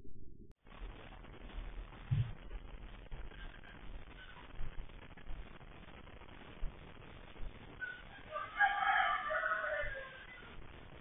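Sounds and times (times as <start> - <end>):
rooster crowing: 7.8 - 10.5.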